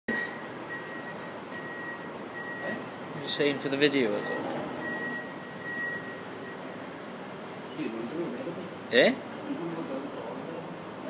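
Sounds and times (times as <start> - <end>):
distant traffic hiss: 0.2 - 11.0.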